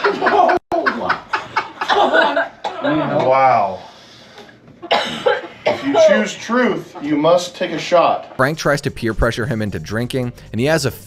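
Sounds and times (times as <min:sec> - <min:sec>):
person coughing: 0:04.9 - 0:06.3.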